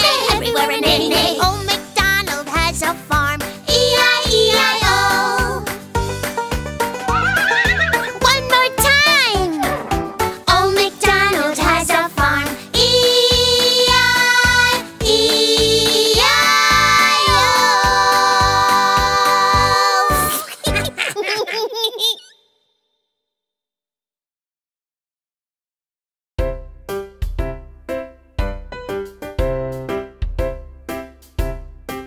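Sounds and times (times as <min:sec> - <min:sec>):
children's song backing music: 0:00.0 - 0:20.9
cartoon horse whinny: 0:07.0 - 0:08.2, 0:09.5 - 0:10.2
cartoon voices giggling: 0:07.0 - 0:08.2, 0:20.2 - 0:22.4.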